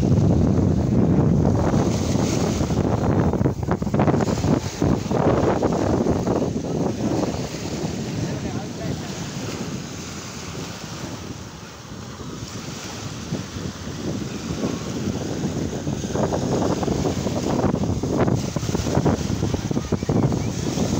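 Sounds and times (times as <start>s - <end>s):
small waves breaking on sand: 0.0s - 20.9s
wind buffeting microphone: 0.0s - 20.9s.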